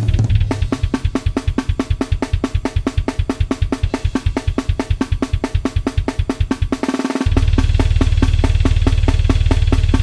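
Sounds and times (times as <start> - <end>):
dense run of low drum hits: 0.0 - 2.4, 7.2 - 10.0
fast grindcore drum beat: 0.0 - 10.0.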